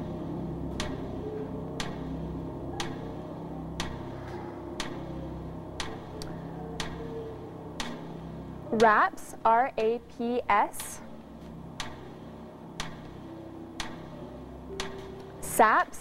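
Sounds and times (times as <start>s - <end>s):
countdown timer ticking: 0.0s - 16.0s
low steady drone: 0.0s - 16.0s.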